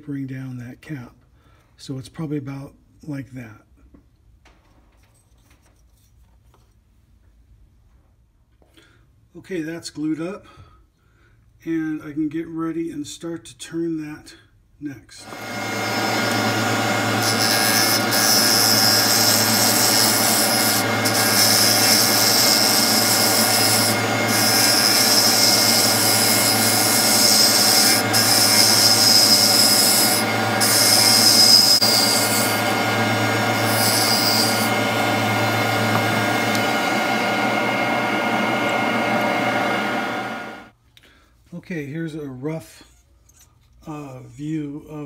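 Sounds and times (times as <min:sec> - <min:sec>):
lathe motor hum: 0:15.2 - 0:40.7
turning tool scraping wood: 0:15.3 - 0:40.6.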